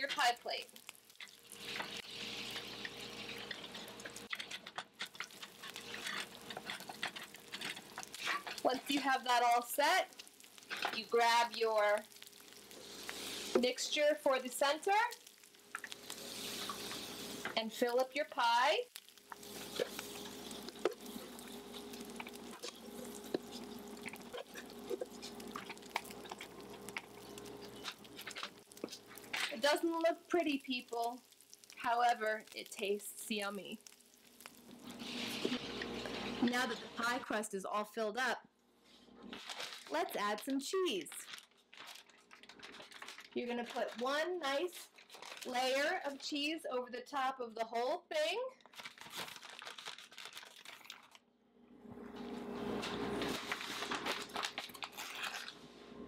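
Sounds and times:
food sizzling in a frying pan: 0:00.0 - 0:37.4.

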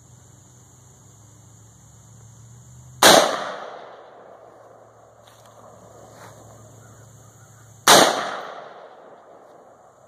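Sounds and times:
rifle shot with echo: 0:03.0 - 0:04.8, 0:07.8 - 0:09.7.

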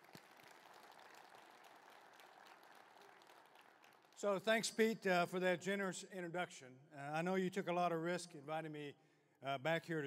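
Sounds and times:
audience applause: 0:00.0 - 0:04.4.

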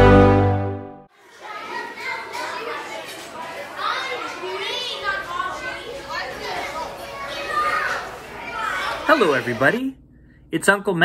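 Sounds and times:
high-pitched voices chattering: 0:01.2 - 0:09.9.

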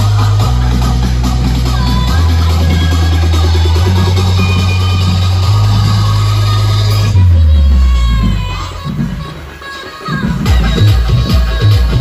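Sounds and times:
loud electronic dance music: 0:00.0 - 0:12.0.

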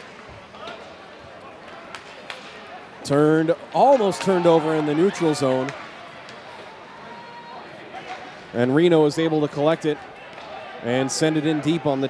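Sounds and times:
sticks and puck clacking: 0:00.0 - 0:06.9
crowd murmur: 0:00.0 - 0:12.0.

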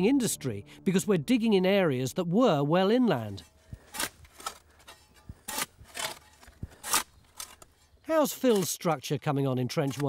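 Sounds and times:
shovel scraping soil: 0:03.2 - 0:08.8.

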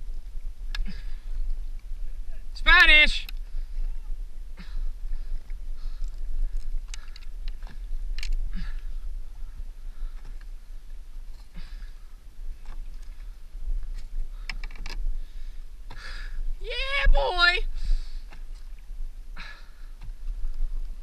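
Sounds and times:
steady low rumble: 0:00.0 - 0:21.0
small clicks and knocks: 0:14.4 - 0:15.0.

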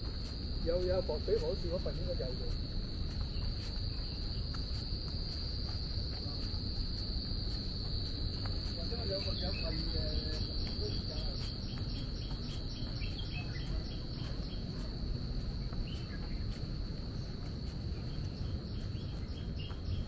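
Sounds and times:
high-pitched insect drone: 0:00.0 - 0:20.0.

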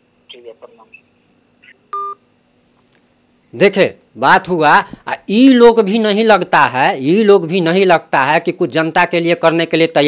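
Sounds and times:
smartphone call end beep: 0:02.0 - 0:02.2.

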